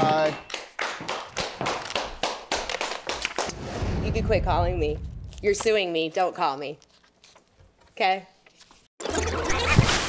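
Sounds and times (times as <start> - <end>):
people applauding: 0.0 - 3.5
low hum: 3.6 - 5.7.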